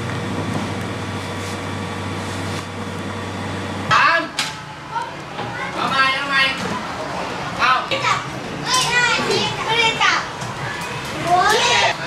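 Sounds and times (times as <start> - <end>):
children chattering: 4.8 - 12.0.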